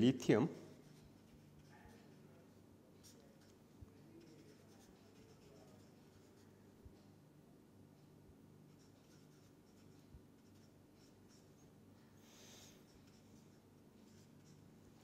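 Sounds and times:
marker scratching on paper: 0.6s - 6.5s, 8.7s - 15.0s.

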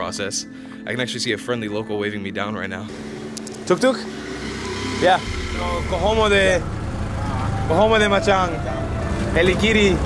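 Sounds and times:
auto-rickshaw engine drone: 2.9s - 10.0s.

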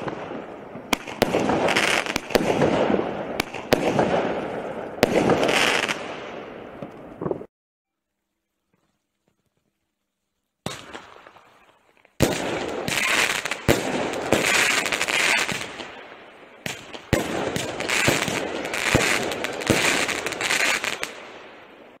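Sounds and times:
firework shots: 0.0s - 7.5s, 10.6s - 11.5s, 12.2s - 22.0s.

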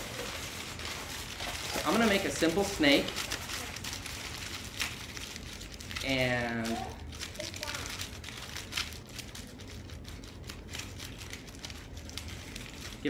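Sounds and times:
aluminum foil crinkling: 0.0s - 13.0s.

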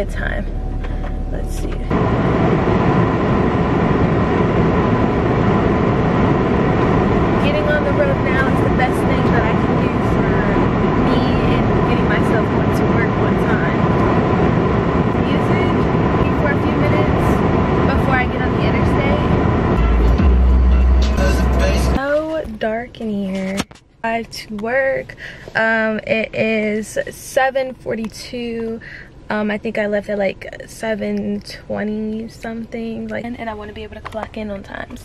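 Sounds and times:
car road and engine noise: 0.0s - 35.0s
song playing: 18.7s - 22.0s.

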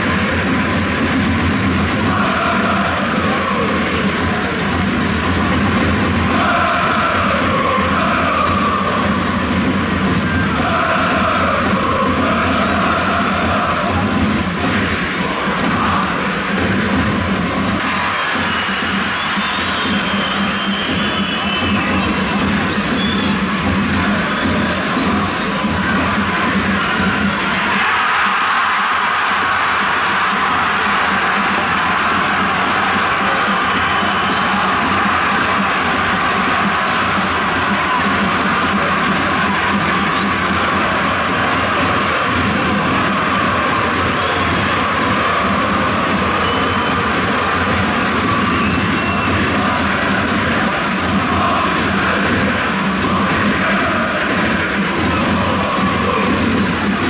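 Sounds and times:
crowd singing and chanting: 0.0s - 57.0s.

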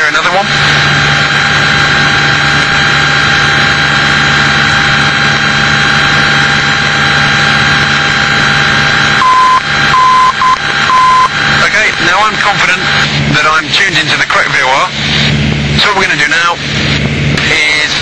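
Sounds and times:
aircraft engine drone: 0.0s - 18.0s
morse code tone: 9.1s - 11.7s.

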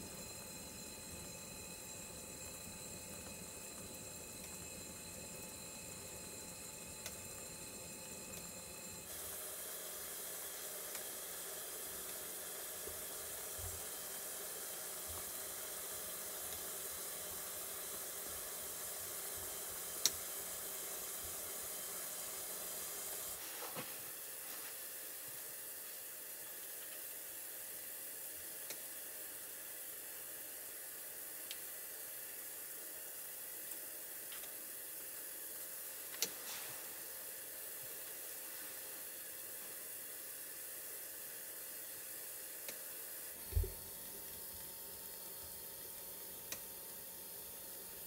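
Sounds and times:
steam and gas flame hissing: 0.0s - 48.0s
soft thump: 43.5s - 43.8s.

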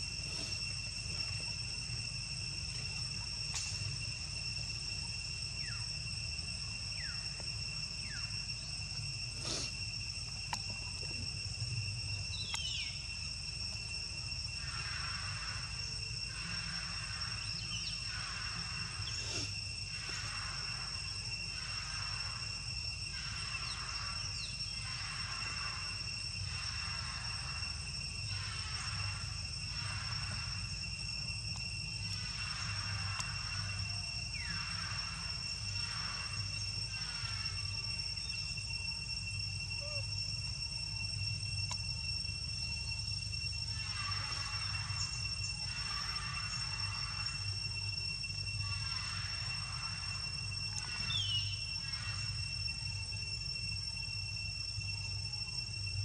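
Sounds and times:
insect drone: 0.0s - 56.0s
pulsing insect chirps: 0.0s - 56.0s.

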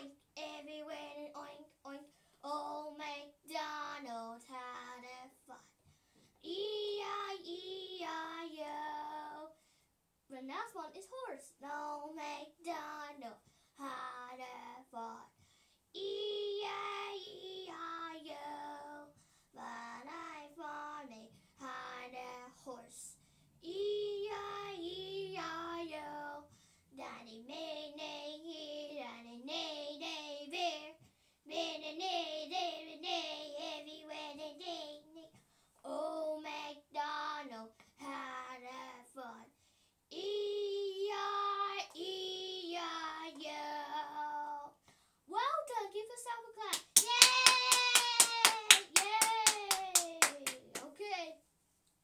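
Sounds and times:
girl singing: 0.0s - 5.8s, 6.4s - 9.6s, 10.3s - 51.4s
hands clapping rapidly: 46.7s - 51.0s.

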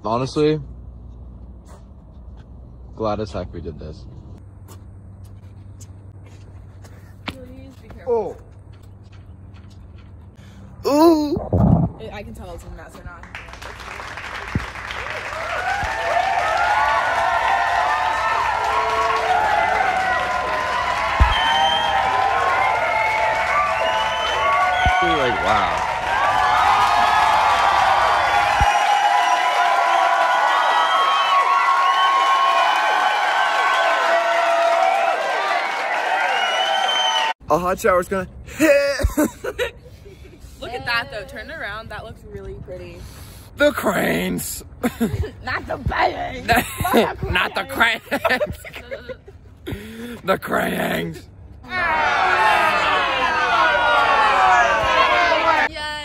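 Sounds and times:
low steady rumble: 0.0s - 18.7s
low rumble: 11.2s - 13.5s
high-pitched voices cheering: 15.1s - 37.4s, 51.6s - 56.0s.

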